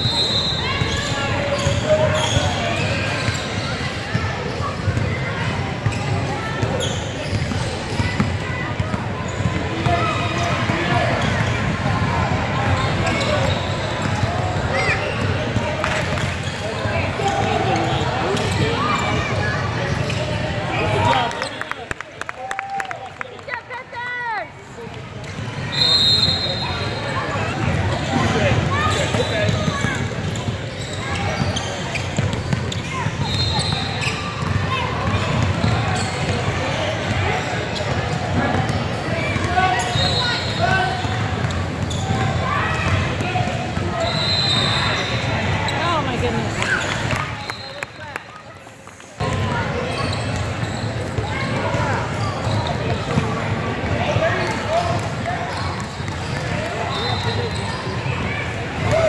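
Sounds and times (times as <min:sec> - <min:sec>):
voices echoing in a gym: 0:00.0 - 0:59.0.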